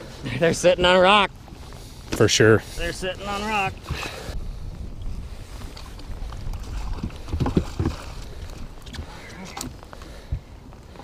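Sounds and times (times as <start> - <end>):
rain falling on water and boat: 0.0 - 11.0
wind rumbling on microphone: 0.0 - 11.0
knocks on boat: 7.0 - 8.1.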